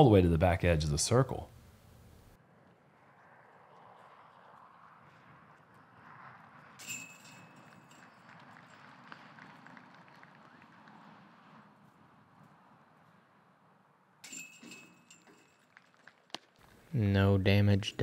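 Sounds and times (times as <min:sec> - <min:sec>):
disc golf basket chains rattling: 0:06.8 - 0:09.1, 0:14.2 - 0:16.9.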